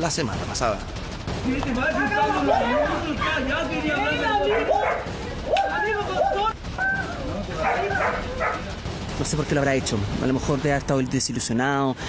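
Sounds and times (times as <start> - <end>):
people's voices: 1.4 - 11.4
dog barking: 2.5 - 3.0, 4.3 - 6.4, 7.6 - 8.7.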